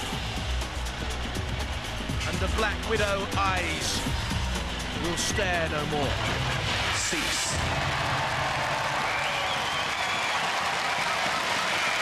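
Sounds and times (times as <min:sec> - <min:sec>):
studio audience applauding: 0:04.7 - 0:12.0.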